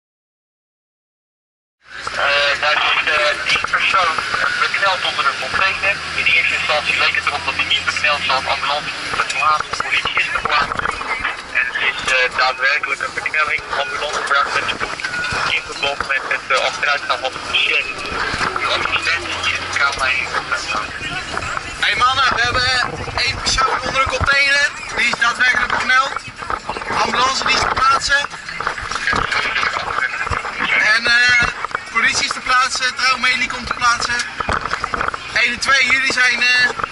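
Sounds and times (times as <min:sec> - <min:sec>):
truck engine drone: 0:01.8 - 0:36.9
voices talking: 0:01.9 - 0:36.9.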